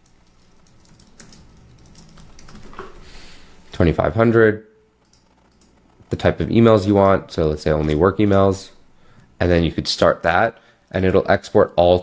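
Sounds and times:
typing on computer keyboard: 0.0s - 3.0s, 5.0s - 5.9s.

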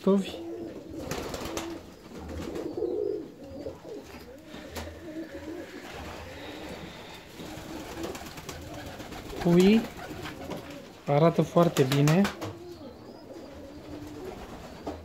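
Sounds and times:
pigeons cooing: 0.0s - 15.0s.

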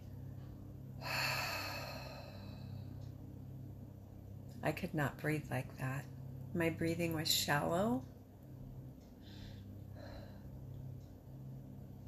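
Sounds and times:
woman breathing out slowly: 1.0s - 3.1s, 9.2s - 10.7s.

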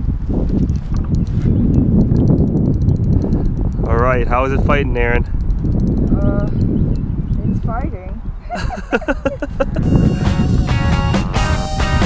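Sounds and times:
steady low rumble: 0.0s - 12.0s
fishing reel ticking: 0.5s - 4.5s, 5.2s - 6.7s.

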